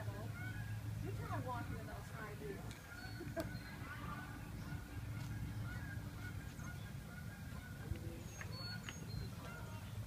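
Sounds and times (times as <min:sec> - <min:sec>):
low outdoor rumble: 0:00.0 - 0:10.0
faint bird calls: 0:00.1 - 0:01.6, 0:02.7 - 0:10.0.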